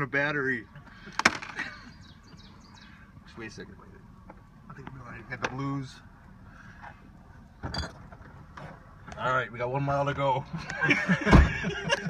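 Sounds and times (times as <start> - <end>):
truck engine rumbling: 0.0 - 12.0.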